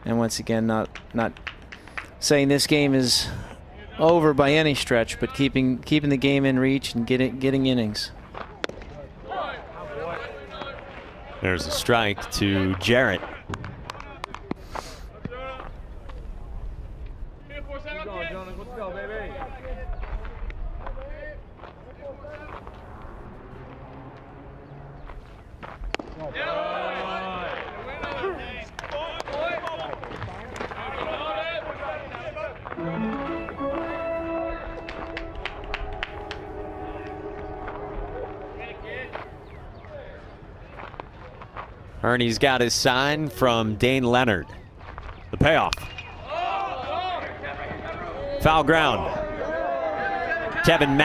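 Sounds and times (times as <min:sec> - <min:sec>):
crowd voices chattering: 0:26.0 - 0:41.9
stadium pa music: 0:32.8 - 0:40.6.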